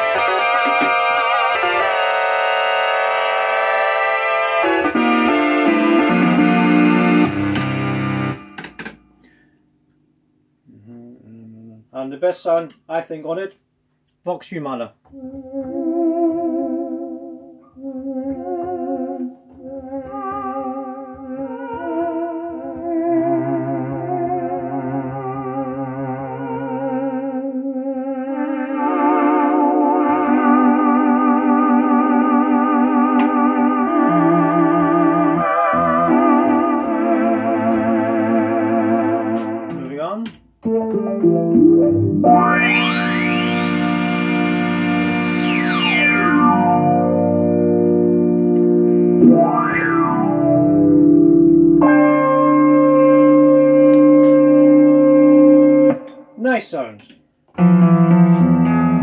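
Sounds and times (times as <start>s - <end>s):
synthesizer chord sweep: 0.0s - 8.7s, 15.7s - 39.9s, 40.6s - 56.2s, 57.6s - 59.0s
choir-like synthesizer chords: 18.0s - 39.7s, 41.9s - 56.0s.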